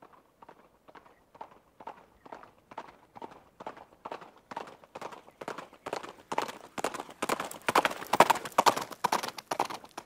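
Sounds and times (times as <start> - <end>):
horse hooves clip-clopping: 0.0 - 10.0.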